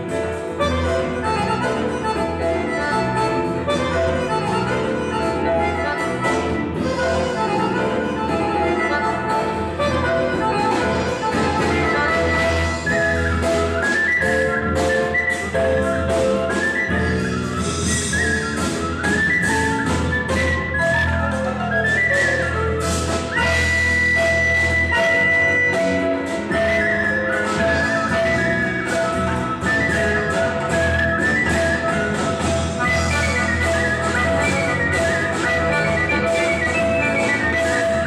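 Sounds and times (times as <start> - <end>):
live band groove: 0.0 - 38.0
wooden flute melody: 0.0 - 38.0.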